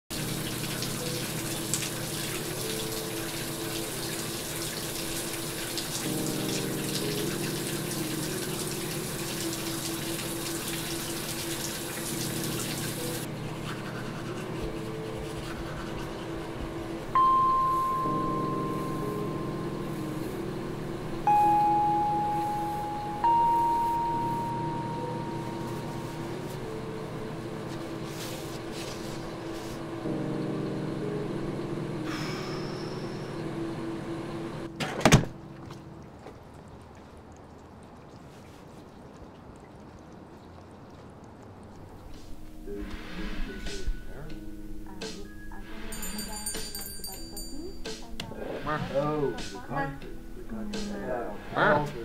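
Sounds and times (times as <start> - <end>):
shower water running: 0.1 - 30.8, 31.6 - 43.9
low sustained music chords: 0.1 - 37.4, 41.6 - 46.4, 47.2 - 52.0
chime-like notes: 17.2 - 20.0, 21.2 - 26.5, 45.7 - 48.2.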